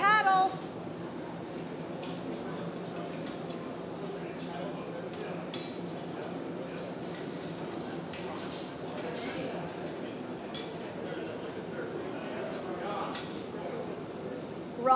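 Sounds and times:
gas furnace and ventilation roar: 0:00.0 - 0:14.9.

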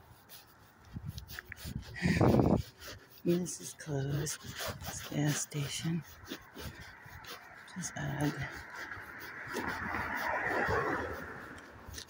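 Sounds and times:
car passing by: 0:08.4 - 0:12.0.

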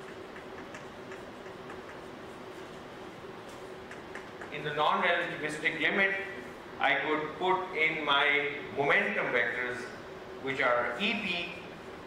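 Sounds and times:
steady faint hum: 0:00.0 - 0:12.0.

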